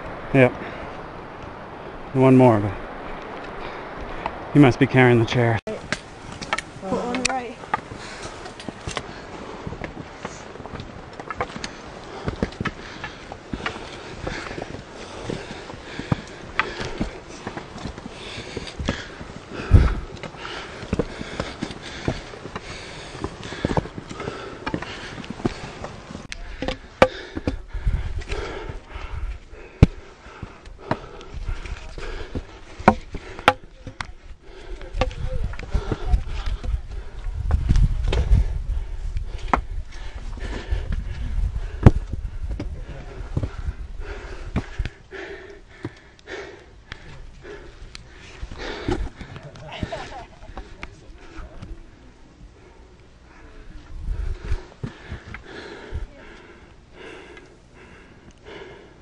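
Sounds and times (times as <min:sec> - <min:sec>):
trekking poles clicking on stone: 0:05.8 - 0:38.4
wind rumble on microphone: 0:27.6 - 0:29.7, 0:34.1 - 0:45.0, 0:53.8 - 0:54.7.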